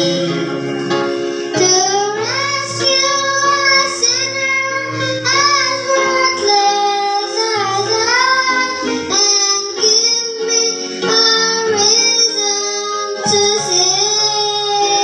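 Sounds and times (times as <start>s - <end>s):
instrumental accompaniment: 0.0s - 15.0s
girl singing hymn into microphone: 1.5s - 15.0s.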